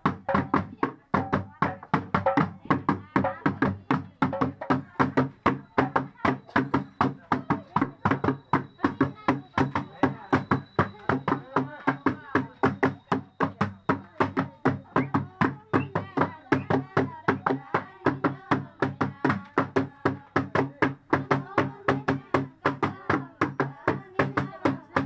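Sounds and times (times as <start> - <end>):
metal basins beaten as drums: 0.0 - 25.0
voices over drumming: 0.0 - 25.0.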